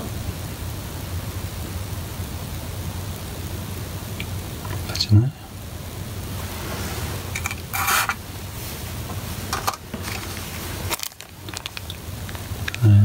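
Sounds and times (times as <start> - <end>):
steady low hum: 0.0 - 13.0
handling rustle: 6.4 - 12.8.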